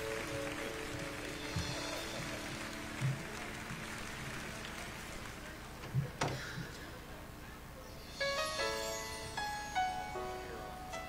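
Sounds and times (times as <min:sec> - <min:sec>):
room noise hiss: 0:00.0 - 0:11.0
soft music of held chords: 0:08.1 - 0:11.0.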